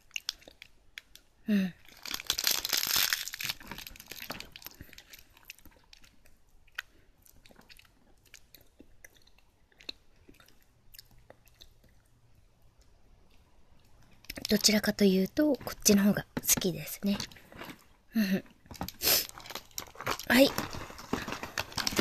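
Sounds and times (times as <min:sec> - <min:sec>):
chewing crunchy biscuit: 0:00.0 - 0:14.9, 0:16.9 - 0:22.0.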